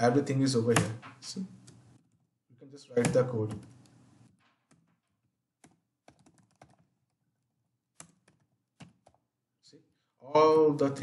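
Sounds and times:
faint keyboard typing: 0:00.7 - 0:02.3, 0:03.0 - 0:09.3.

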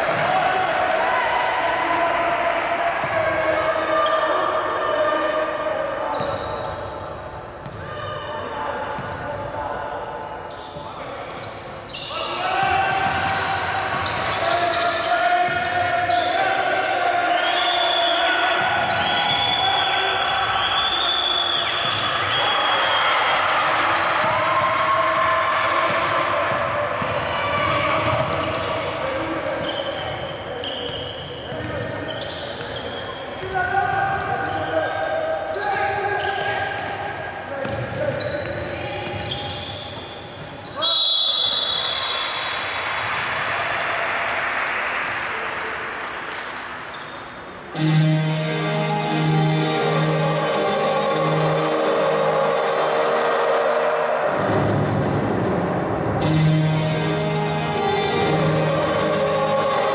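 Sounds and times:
referee's whistle: 0:10.5 - 0:23.3, 0:28.0 - 0:42.8
players and coaches shouting: 0:12.0 - 0:31.0, 0:48.6 - 0:54.7.

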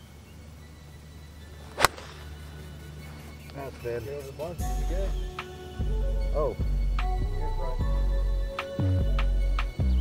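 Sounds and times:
golf iron striking ball: 0:01.6 - 0:02.6.

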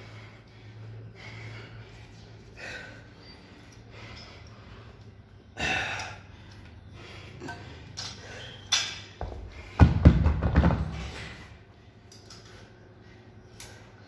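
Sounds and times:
heavy breathing: 0:00.0 - 0:09.8.

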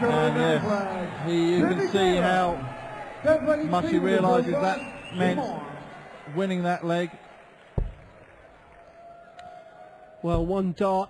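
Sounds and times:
faint arena background noise: 0:00.0 - 0:11.0.

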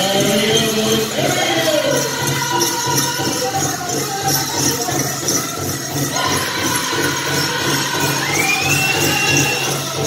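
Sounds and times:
bells jingling: 0:00.0 - 0:10.0.

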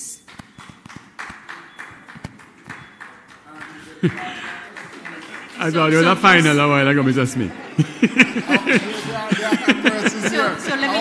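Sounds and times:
light applause: 0:00.0 - 0:07.4.

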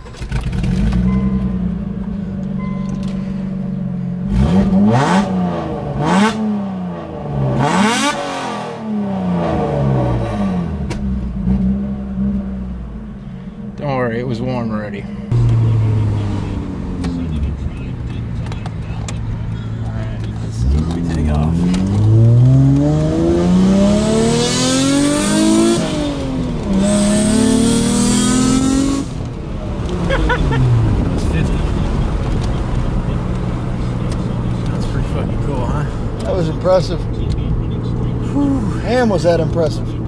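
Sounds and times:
car engine revving in cabin: 0:00.0 - 0:13.8, 0:15.3 - 0:40.0.

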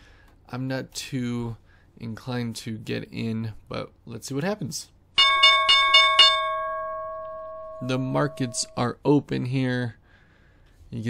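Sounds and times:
bell-like alert chime: 0:05.2 - 0:08.9.

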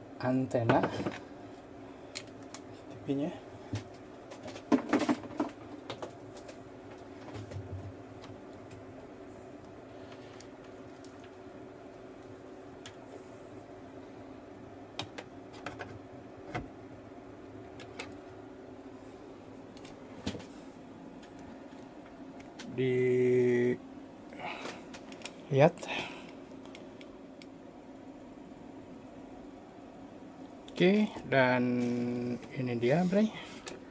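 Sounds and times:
steady low hum: 0:00.0 - 0:33.9.

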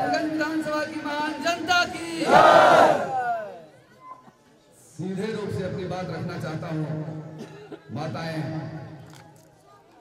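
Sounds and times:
crowd shouting in unison: 0:02.2 - 0:03.6.

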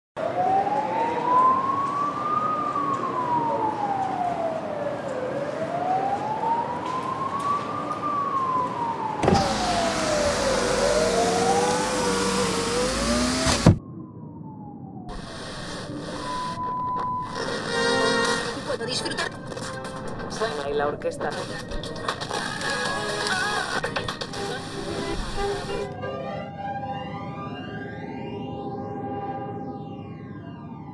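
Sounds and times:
lower siren wail: 0:00.2 - 0:21.6, 0:24.8 - 0:30.9
siren wailing: 0:00.2 - 0:30.9.

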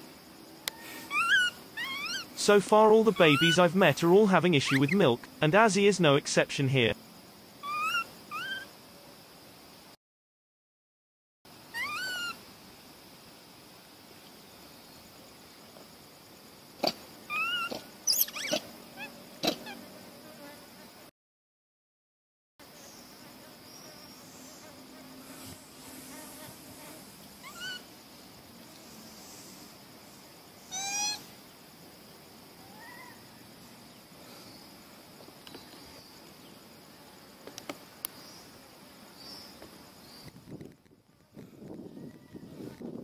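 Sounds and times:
faint steady hiss: 0:00.0 - 0:10.0, 0:11.5 - 0:21.1, 0:22.6 - 0:43.0
steady insect drone: 0:00.0 - 0:10.0, 0:11.5 - 0:21.1, 0:22.6 - 0:43.0
monkey coo: 0:00.7 - 0:02.4, 0:07.6 - 0:08.7, 0:11.7 - 0:12.4, 0:16.8 - 0:19.8, 0:27.4 - 0:27.9, 0:30.7 - 0:31.3, 0:32.6 - 0:33.3.

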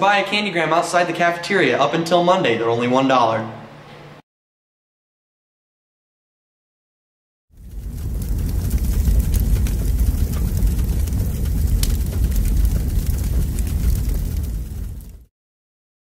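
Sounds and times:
deep fire rumble: 0:07.5 - 0:15.3
fire crackles: 0:07.5 - 0:15.3.

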